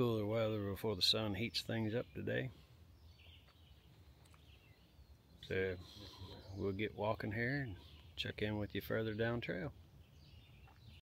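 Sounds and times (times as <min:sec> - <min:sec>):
faint high bird chirps: 0:01.5 - 0:11.0.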